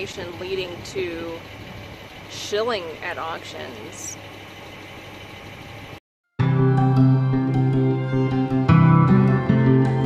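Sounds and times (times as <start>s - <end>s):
vehicle engine idling: 0.0s - 6.0s.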